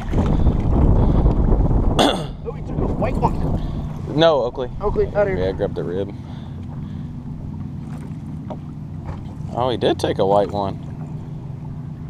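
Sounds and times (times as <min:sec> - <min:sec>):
boat motor humming: 0:00.0 - 0:12.0.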